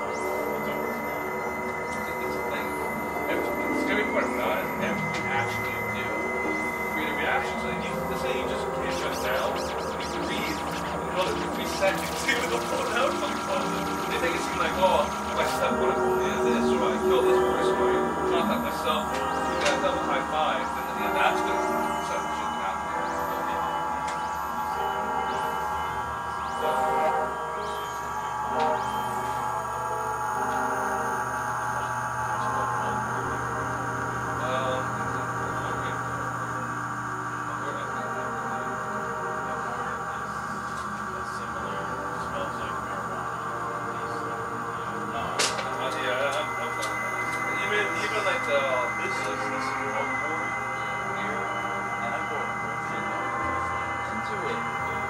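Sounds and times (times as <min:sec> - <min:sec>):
held synthesizer drone tones: 0:00.0 - 0:55.0
scattered clicks and crackles: 0:07.6 - 0:15.7.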